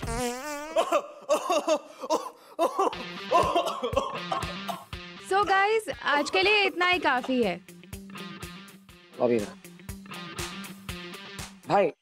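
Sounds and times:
comic fart sound effect: 0:00.0 - 0:00.9.

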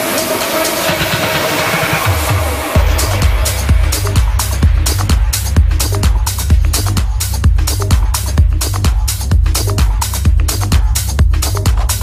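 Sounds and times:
ticking hi-hats: 0:00.0 - 0:12.0.

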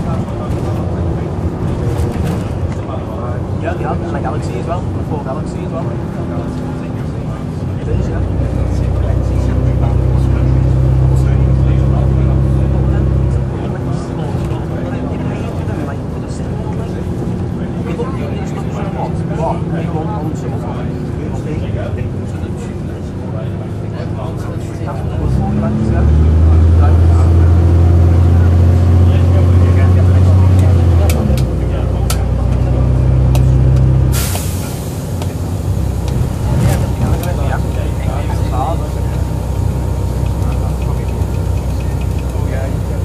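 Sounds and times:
bus diesel engine droning: 0:00.0 - 0:43.0
sudden hiss: 0:34.1 - 0:35.3.

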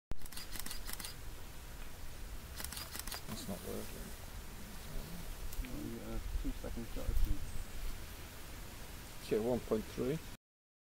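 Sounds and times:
camera shutters clicking: 0:00.2 - 0:01.2, 0:02.6 - 0:03.3.

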